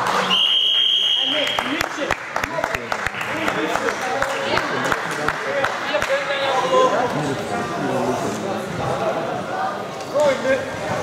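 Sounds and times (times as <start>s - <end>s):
scattered claps: 0.0s - 6.2s
crowd chatter: 0.0s - 11.0s.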